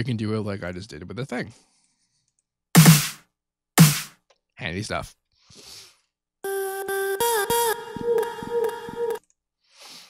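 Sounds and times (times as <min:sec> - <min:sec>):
click: 0:02.2 - 0:02.5.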